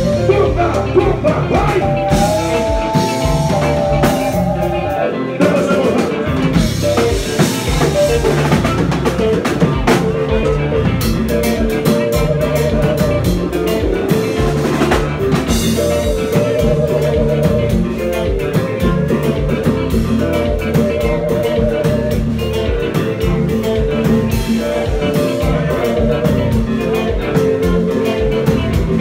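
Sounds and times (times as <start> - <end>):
long held wavering notes: 0.0 - 5.4
drum kit beating a groove: 0.0 - 29.0
live band playing: 0.0 - 29.0.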